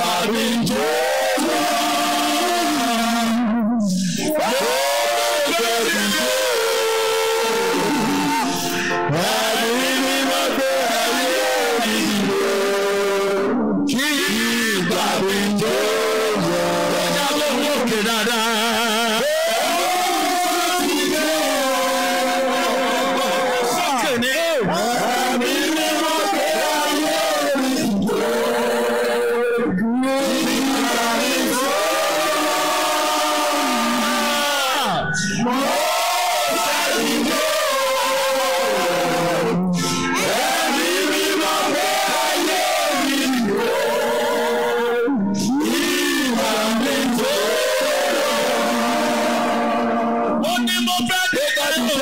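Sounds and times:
worship singing: 0.0 - 52.0
congregation crying out in prayer: 4.2 - 52.0.

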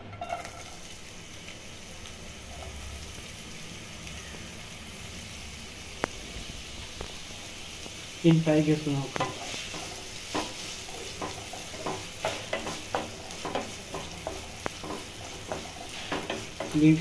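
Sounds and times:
onions sizzling in oil: 0.0 - 17.0
wooden spatula scraping a pan: 9.2 - 17.0.

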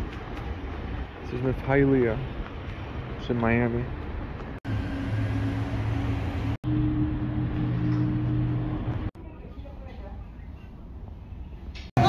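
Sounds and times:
low engine drone: 4.6 - 9.2.

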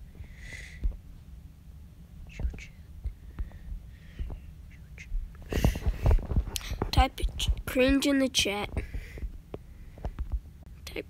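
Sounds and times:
person whispering: 2.3 - 2.9
breathy mouth noises: 2.3 - 6.9.

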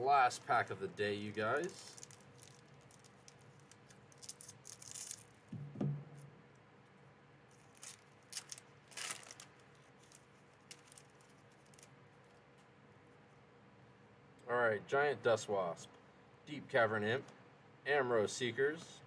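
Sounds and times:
foil wrapper crinkling and tearing: 0.4 - 5.4, 7.5 - 12.4
cards being handled: 1.1 - 5.7, 7.5 - 12.7.

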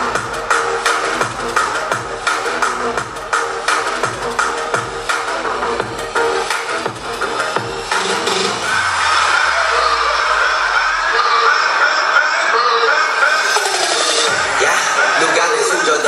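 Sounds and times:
bass-heavy electronic music: 0.0 - 16.0.

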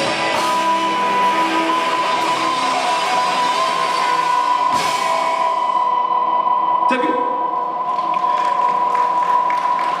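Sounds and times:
electric guitars ringing: 0.0 - 10.0.

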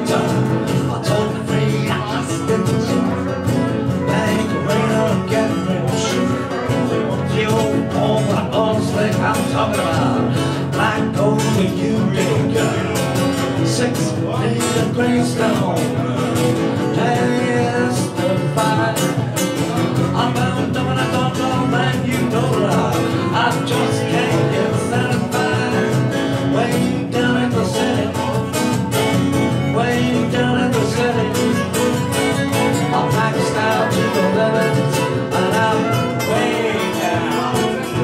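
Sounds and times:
acoustic guitar strumming: 0.0 - 38.0.

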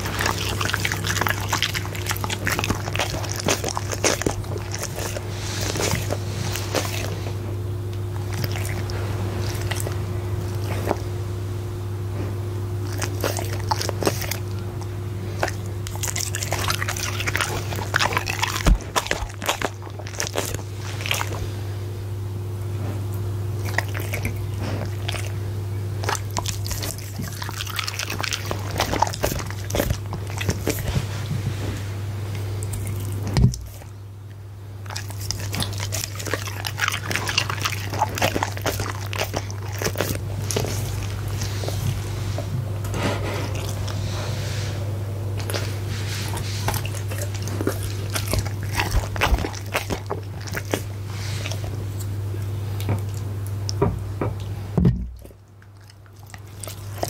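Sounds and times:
dog chewing meat: 0.0 - 21.8, 22.6 - 57.0
steady low hum: 0.0 - 57.0.

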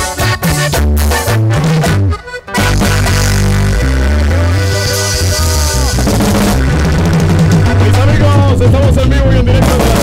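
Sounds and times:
bass guitar: 0.0 - 10.0
drum kit beat: 0.0 - 10.0
strummed guitar: 0.0 - 10.0.

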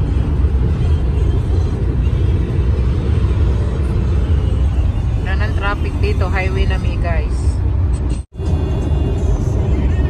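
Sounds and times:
car cabin road and engine noise: 0.0 - 10.0.

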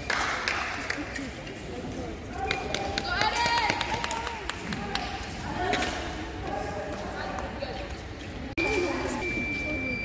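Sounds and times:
voices raised in a hall: 0.0 - 10.0.

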